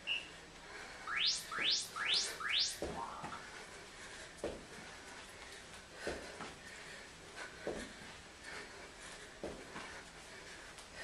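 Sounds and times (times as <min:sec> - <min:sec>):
quick chirps rising in pitch: 0:01.1 - 0:03.4
timer countdown beep: 0:01.1 - 0:03.4.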